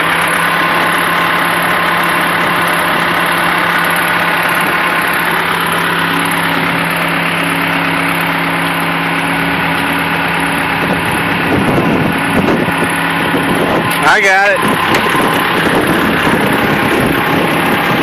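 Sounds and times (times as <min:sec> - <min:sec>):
engines idling hum: 0:00.0 - 0:18.0
higher hum: 0:00.0 - 0:18.0.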